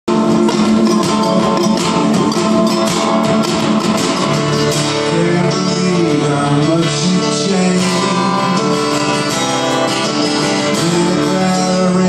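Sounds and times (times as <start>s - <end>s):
acoustic guitars strumming: 0.1s - 12.0s.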